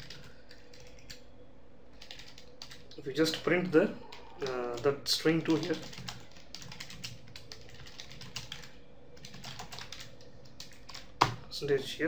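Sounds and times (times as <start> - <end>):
computer keyboard typing: 0.0 - 1.2, 2.0 - 3.5, 4.1 - 11.4.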